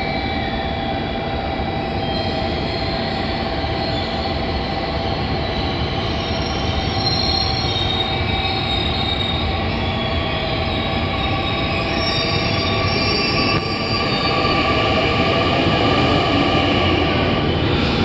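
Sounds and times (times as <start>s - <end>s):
high whining and squealing tones: 0.0s - 18.0s
train rumbling: 0.0s - 18.0s.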